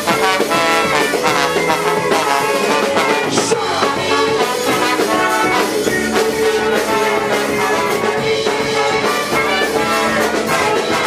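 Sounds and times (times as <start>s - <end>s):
live band playing loud: 0.0s - 11.0s
saxophone: 0.0s - 11.0s
trombone: 0.0s - 11.0s.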